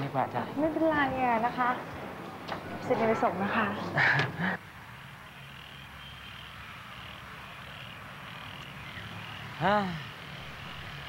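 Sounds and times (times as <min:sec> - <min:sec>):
frogs calling: 0:04.5 - 0:11.0.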